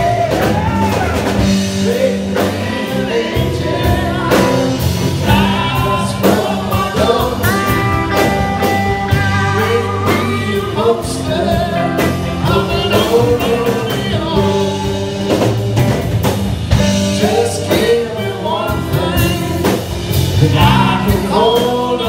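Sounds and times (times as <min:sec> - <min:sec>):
man singing: 0:00.0 - 0:15.9, 0:16.7 - 0:22.0
electric guitars playing blues-rock: 0:00.0 - 0:22.0.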